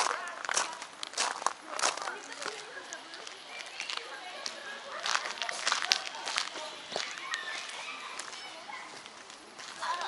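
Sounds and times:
distant children's chatter: 0.0 - 10.0.

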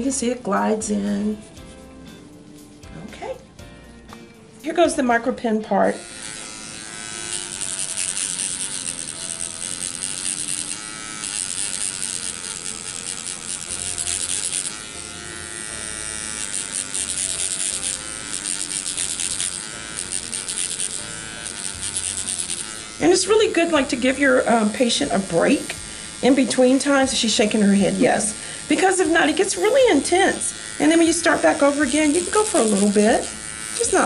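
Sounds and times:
microneedling pen buzzing: 3.9 - 34.0.

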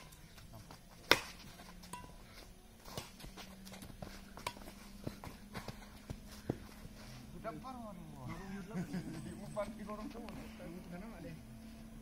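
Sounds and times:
rackets hitting shuttlecock: 0.0 - 6.9.

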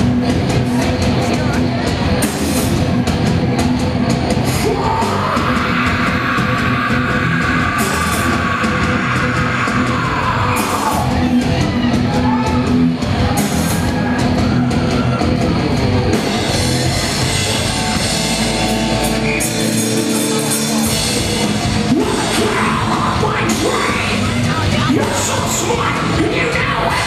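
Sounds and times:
hardcore band playing live: 0.0 - 27.0
screamed vocal: 4.6 - 11.3.

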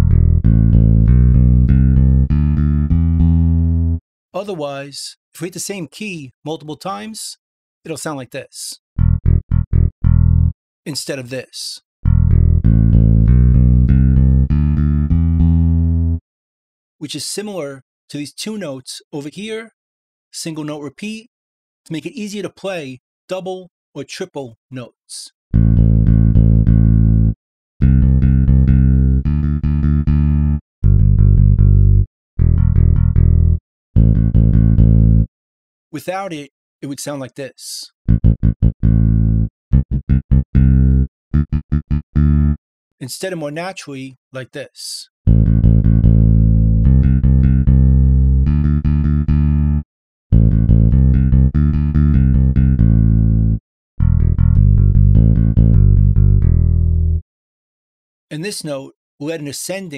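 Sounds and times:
electric bass repeated low notes: 0.0 - 4.0, 9.0 - 10.6, 12.0 - 16.2, 25.5 - 35.3, 38.1 - 42.6, 45.3 - 57.2
electric bass fast runs: 45.3 - 47.0.

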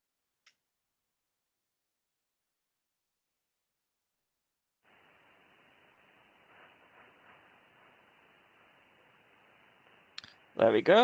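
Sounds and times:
faint radio receiver hiss: 4.8 - 11.0.

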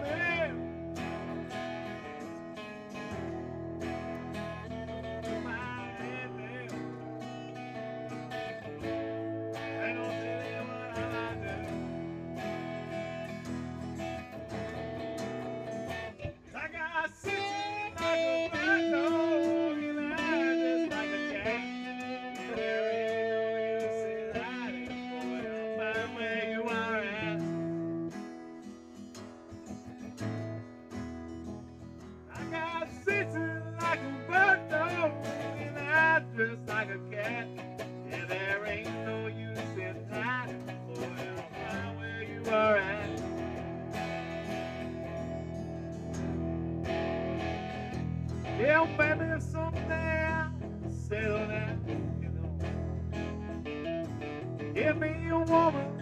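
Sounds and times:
guitar chords: 0.0 - 56.0
wavering guitar lead line: 0.0 - 56.0.

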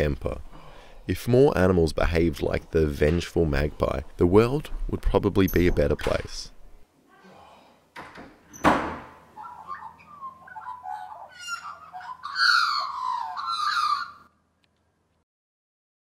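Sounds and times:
magpies carolling: 9.2 - 14.3.

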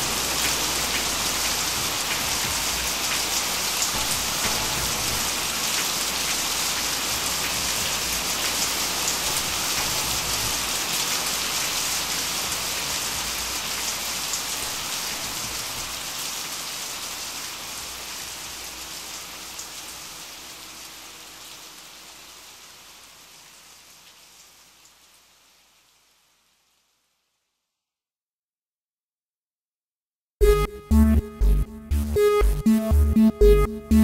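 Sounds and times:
rain-like electronic hiss: 0.0 - 27.7.

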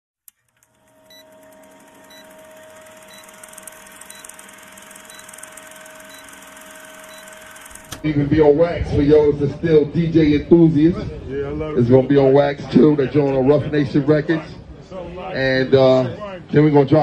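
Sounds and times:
projector click: 0.3 - 8.0
projector mechanical whirr: 0.3 - 8.3
constant hum: 0.4 - 17.0.

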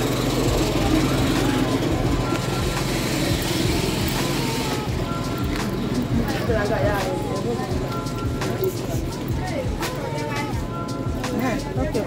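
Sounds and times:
engine running: 0.0 - 12.0
music playing: 0.0 - 12.0.

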